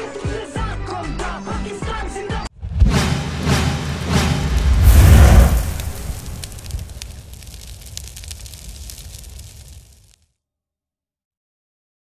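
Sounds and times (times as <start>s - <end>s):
deep boom with crackling tail: 2.8s - 10.2s.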